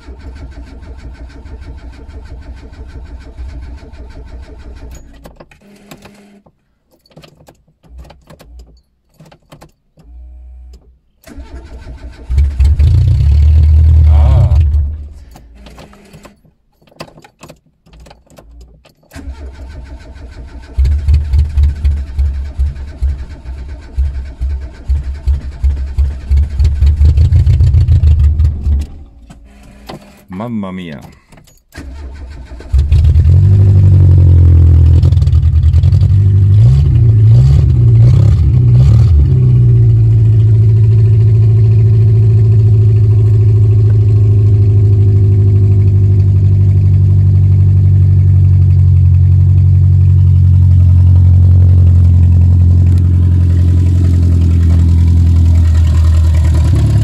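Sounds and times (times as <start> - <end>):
car engine starting loudly: 0.0 - 5.1, 11.2 - 15.6, 19.1 - 29.6, 31.8 - 57.0.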